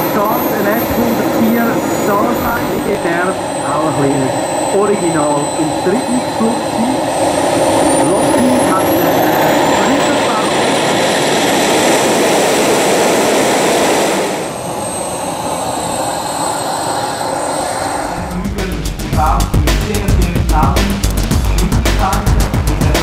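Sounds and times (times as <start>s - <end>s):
jet turbine engine whine: 0.0s - 23.0s
rush of air: 10.8s - 14.9s
music: 18.2s - 23.0s.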